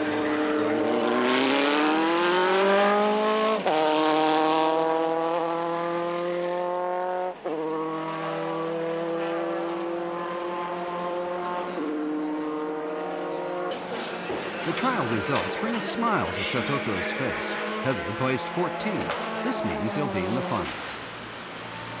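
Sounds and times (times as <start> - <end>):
racing car engine at high revs: 0.0 - 22.0.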